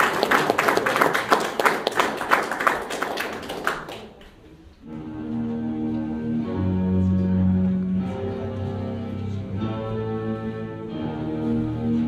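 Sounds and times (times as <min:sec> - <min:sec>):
audience applauding: 0:00.0 - 0:04.4.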